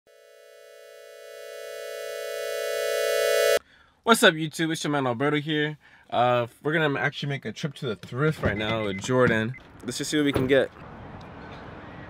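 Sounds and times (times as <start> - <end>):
buzzy electronic synth tone: 0.1 - 3.6.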